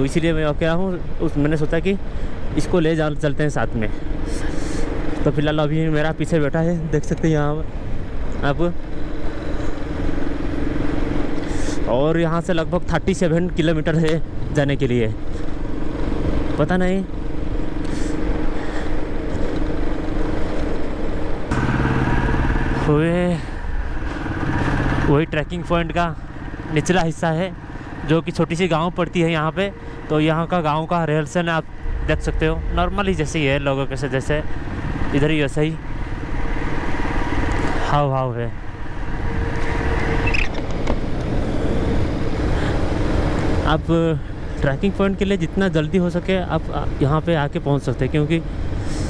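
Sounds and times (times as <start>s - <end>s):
heavy wind noise: 0.0s - 49.0s
road noise: 0.0s - 49.0s
motorcycle engine running: 15.2s - 38.0s.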